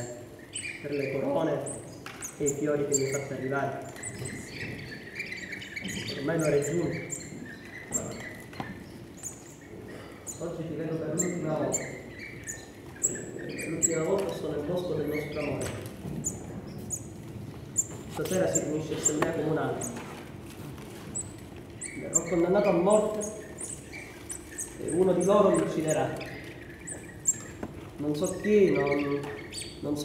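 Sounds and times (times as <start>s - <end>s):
high bird chirps: 0.0s - 17.1s, 21.1s - 30.0s.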